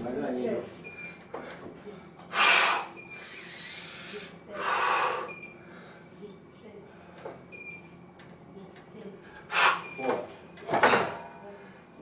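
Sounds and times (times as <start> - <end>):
heavy breathing: 1.4 - 6.2.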